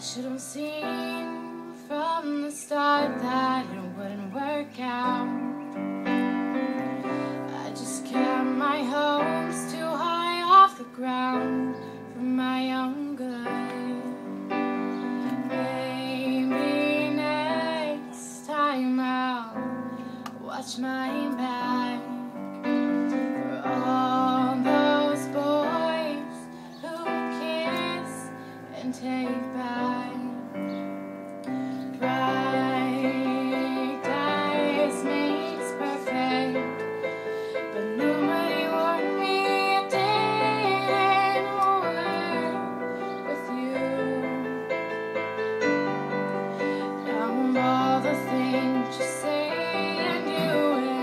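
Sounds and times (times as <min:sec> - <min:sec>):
keyboard piano chords: 0:00.0 - 0:51.0
woman singing: 0:00.0 - 0:51.0.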